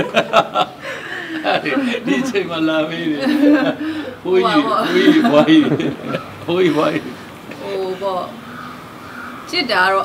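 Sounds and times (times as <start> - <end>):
man and woman laughing: 0.0 - 7.2.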